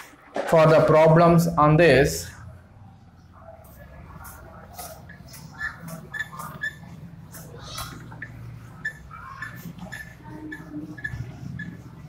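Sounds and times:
short squeak on whiteboard: 5.6s - 6.9s.

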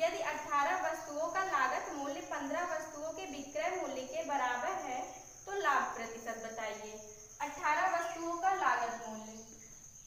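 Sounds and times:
woman speaking: 0.0s - 9.6s.

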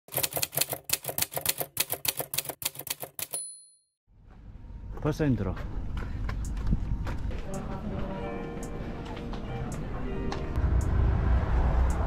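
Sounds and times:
typewriter key strikes: 0.1s - 3.6s
typewriter bell ding: 3.1s - 3.9s.

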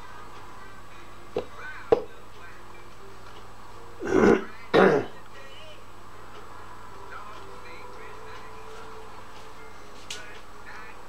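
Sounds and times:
person coughing: 4.0s - 5.2s.

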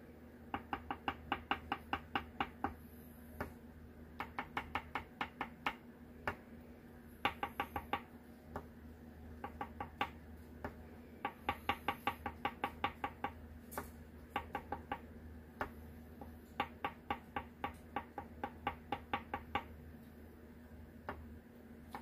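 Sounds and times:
paintbrush tapping on paper: 0.5s - 2.8s, 4.2s - 6.4s, 7.2s - 8.7s, 9.4s - 19.7s.

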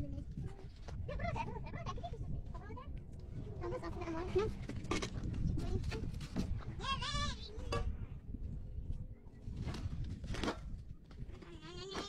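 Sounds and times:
goat or sheep bleating: 6.8s - 7.5s, 11.4s - 12.0s.

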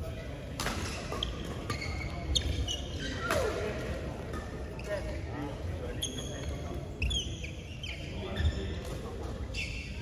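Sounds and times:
shoes squeaking on court floor: 0.6s - 10.0s.

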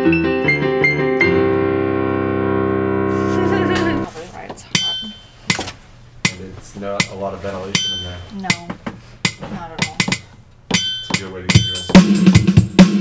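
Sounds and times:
electronic keyboard piano chords: 0.0s - 4.1s.

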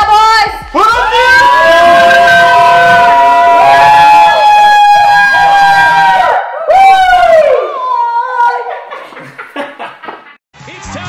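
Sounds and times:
people yelling and cheering: 0.0s - 9.4s.

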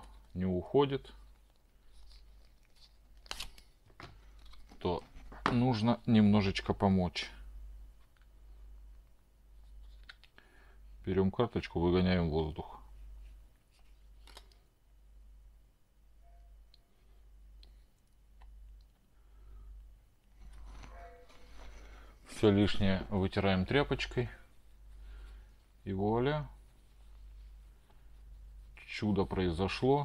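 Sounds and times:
room hum: 0.0s - 30.0s.

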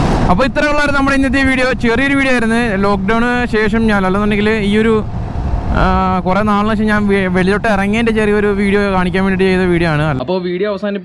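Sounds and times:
motorcycle rumble: 0.0s - 10.2s
wind: 0.0s - 11.0s.

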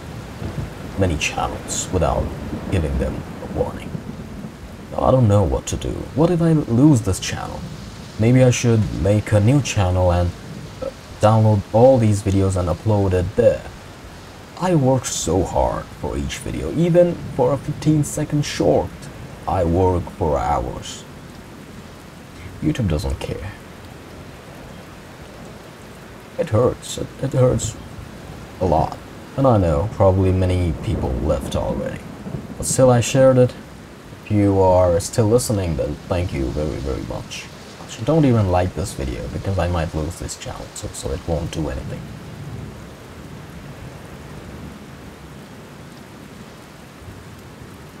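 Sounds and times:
steady rushing hiss: 0.0s - 48.0s.

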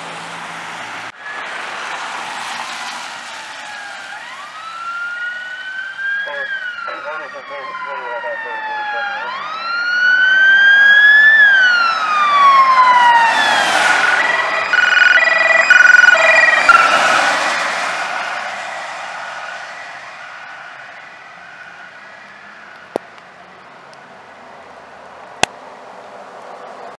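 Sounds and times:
police siren wailing: 1.1s - 23.6s.

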